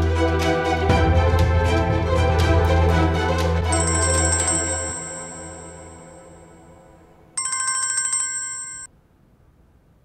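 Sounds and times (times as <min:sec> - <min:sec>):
mobile phone ringing: 0:03.8 - 0:06.7, 0:07.4 - 0:08.9.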